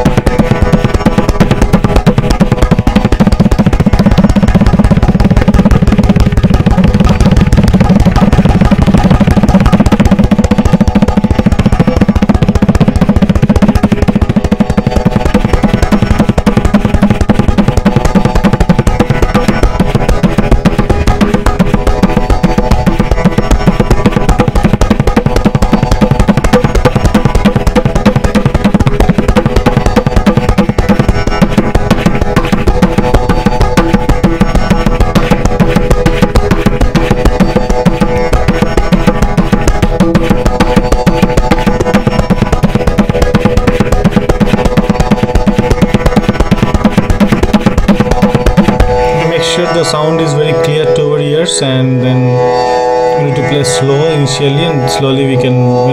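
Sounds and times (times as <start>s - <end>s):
tabla playing: 0.0s - 55.9s.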